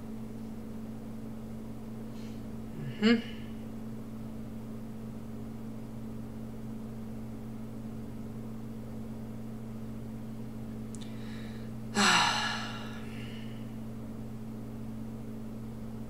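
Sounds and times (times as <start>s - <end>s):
low hum: 0.0s - 16.0s
person gasping: 2.2s - 3.5s, 11.0s - 13.6s.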